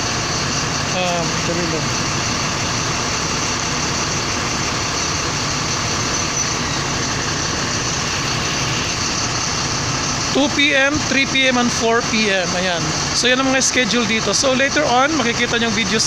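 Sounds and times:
bus engine idling: 0.0s - 16.0s.

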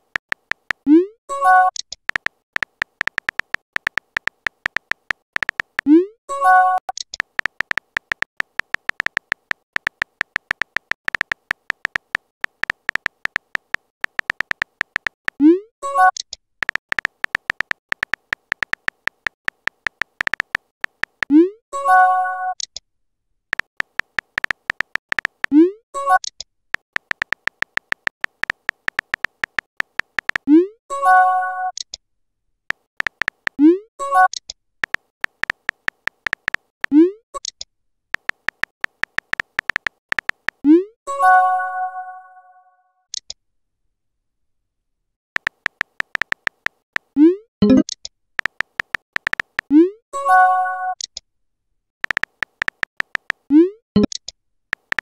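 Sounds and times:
phone keyboard key clicks: 0.0s - 0.8s, 1.8s - 5.9s, 7.0s - 15.4s, 16.2s - 21.3s, 23.5s - 25.5s, 26.2s - 30.5s, 32.7s - 33.6s, 34.3s - 36.7s, 38.2s - 40.6s, 45.4s - 47.1s, 47.7s - 49.7s, 52.0s - 55.0s.

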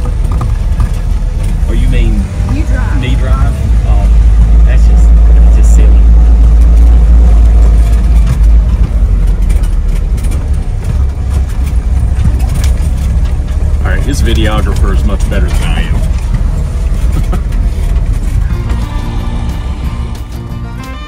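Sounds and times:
vehicle engine and gravel rumble: 0.0s - 21.0s.

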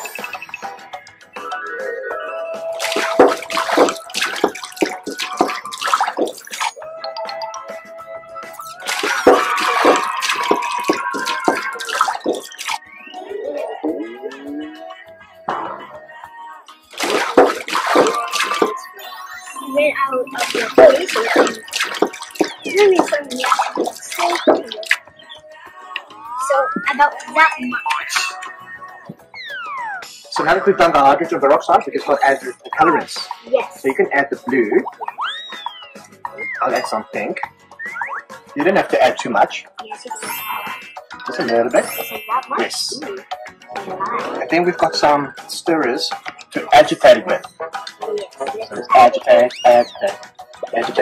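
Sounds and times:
background music: 0.0s - 51.0s
liquid splashing into glass: 2.8s - 7.4s, 8.6s - 12.8s, 17.0s - 18.8s, 20.4s - 25.0s.

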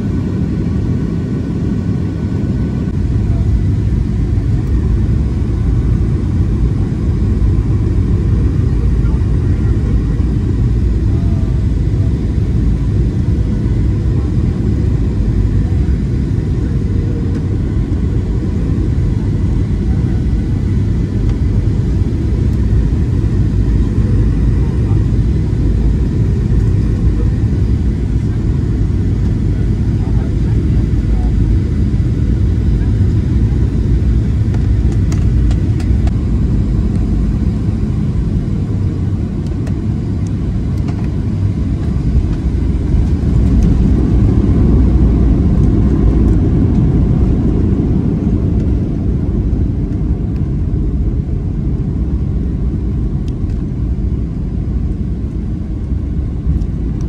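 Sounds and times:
jet engines rumbling in cabin: 0.0s - 57.0s.

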